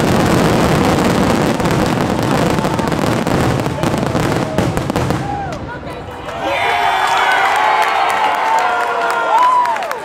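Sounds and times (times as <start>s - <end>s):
fireworks crackling bangs: 0.0s - 6.1s.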